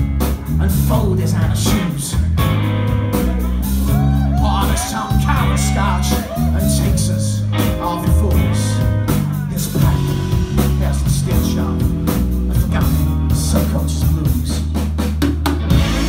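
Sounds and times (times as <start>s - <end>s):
drum kit with cymbals: 0.0s - 16.0s
electric bass guitar low notes: 0.0s - 16.0s
electric guitar: 0.0s - 16.0s.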